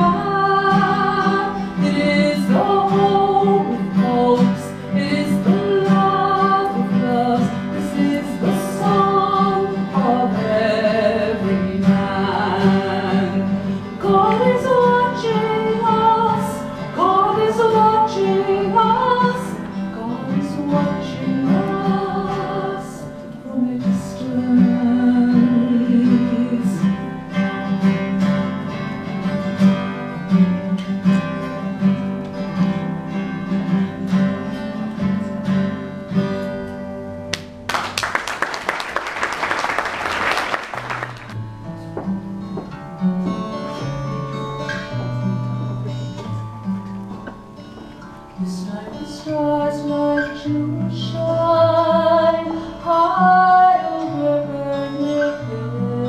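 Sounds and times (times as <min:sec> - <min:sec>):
woman singing: 0:00.0 - 0:27.5, 0:48.4 - 0:56.0
acoustic guitar: 0:00.0 - 0:56.0
applause: 0:37.3 - 0:41.4.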